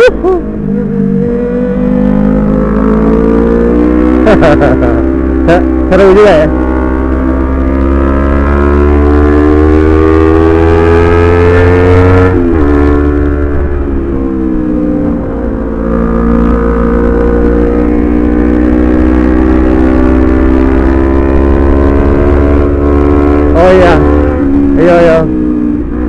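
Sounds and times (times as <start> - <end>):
motorcycle engine revving: 0.0 - 26.0.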